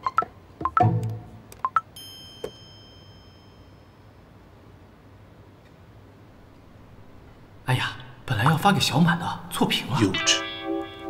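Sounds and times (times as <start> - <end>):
playful plucked-string music: 0.0 - 1.5, 10.0 - 11.0
bright chime: 2.0 - 4.3.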